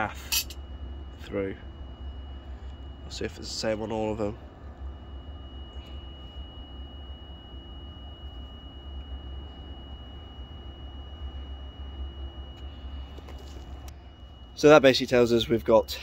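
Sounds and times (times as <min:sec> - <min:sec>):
faint high-pitched tone: 0:00.0 - 0:16.0
steady low rumble: 0:00.0 - 0:16.0.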